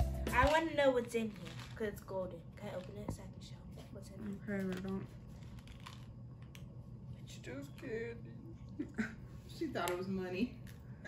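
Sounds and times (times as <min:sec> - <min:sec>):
low room hum: 0:00.0 - 0:11.0
plastic egg clicks and rustles: 0:00.5 - 0:03.3, 0:04.3 - 0:06.8.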